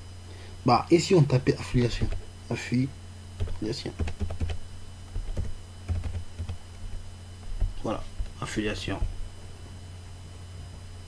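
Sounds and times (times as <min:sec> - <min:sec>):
computer keyboard typing: 0:01.8 - 0:02.3, 0:03.4 - 0:09.1.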